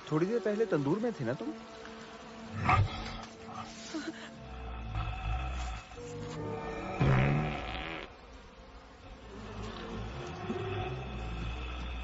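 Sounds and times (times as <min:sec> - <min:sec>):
bees buzzing: 0:00.0 - 0:12.0.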